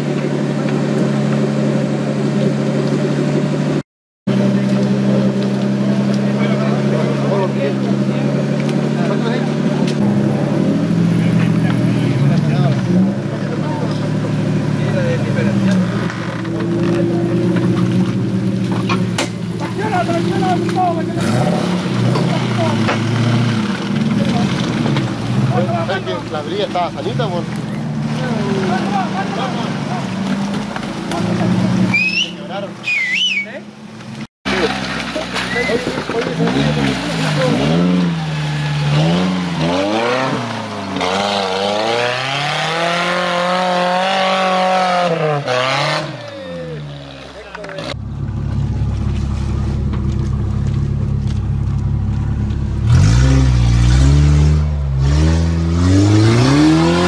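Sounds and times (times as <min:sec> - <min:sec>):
off-road engines idling and revving: 0:00.0 - 0:57.0.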